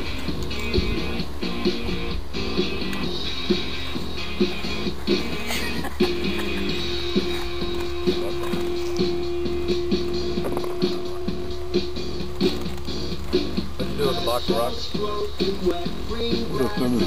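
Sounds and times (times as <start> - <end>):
background music with steady beat: 0.0 - 17.0
long held note: 8.8 - 12.4.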